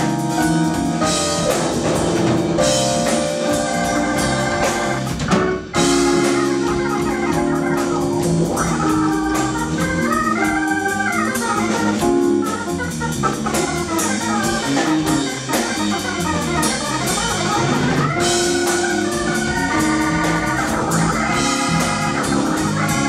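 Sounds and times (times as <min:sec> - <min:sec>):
drum kit: 0:00.0 - 0:23.0
electric bass: 0:00.0 - 0:23.0
organ-toned keyboard: 0:00.0 - 0:23.0.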